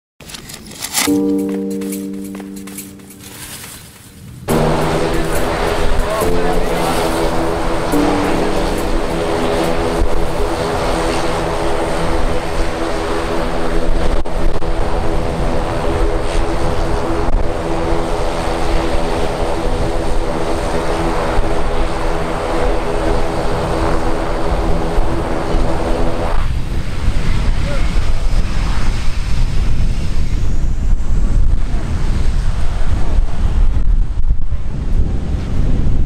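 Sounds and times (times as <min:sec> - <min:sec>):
turboprop engines droning: 0:04.5 - 0:27.5.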